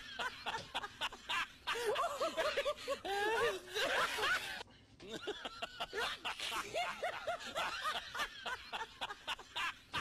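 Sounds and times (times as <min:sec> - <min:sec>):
high-pitched laughter: 0:00.0 - 0:10.0.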